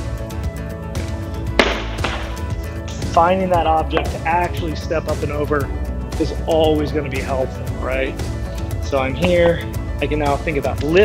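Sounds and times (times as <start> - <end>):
background music: 0.0 - 11.0
medicine ball thud on rubber floor: 1.6 - 2.5.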